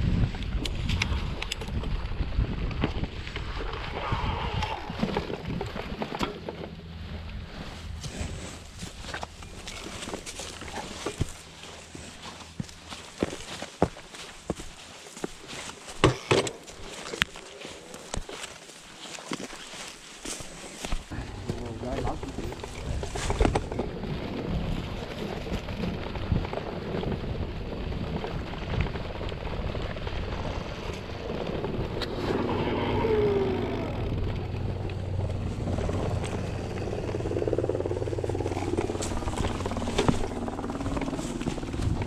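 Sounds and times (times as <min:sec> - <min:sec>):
bike tyres rolling over rough ground: 0:00.0 - 0:42.0
bike rattling: 0:04.7 - 0:42.0.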